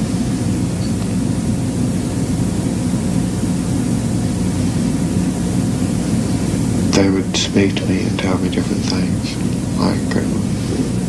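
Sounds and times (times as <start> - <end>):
film soundtrack hiss: 0.0 - 11.0
low even hum: 0.0 - 11.0.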